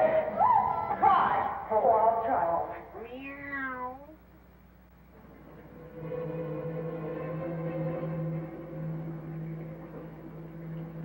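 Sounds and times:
cat meowing: 0:03.0 - 0:04.2.

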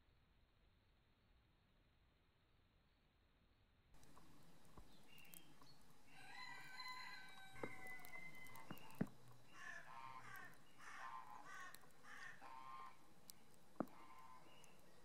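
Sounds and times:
rooster crowing: 0:06.1 - 0:13.0.

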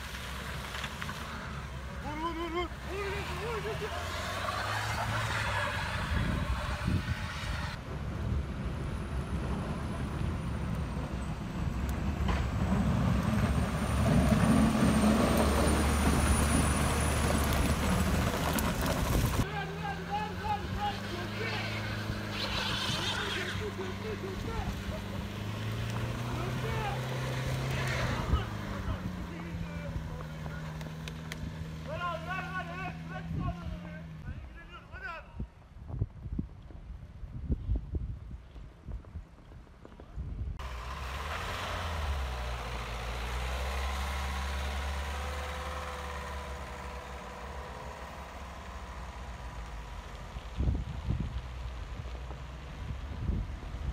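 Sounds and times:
plow blade pushing snow: 0:00.0 - 0:34.2, 0:40.6 - 0:53.9
truck engine rumbling: 0:00.0 - 0:35.2, 0:40.6 - 0:53.9
man shouting: 0:02.0 - 0:04.1, 0:19.4 - 0:21.8, 0:31.9 - 0:35.4
van engine running: 0:40.6 - 0:52.5.

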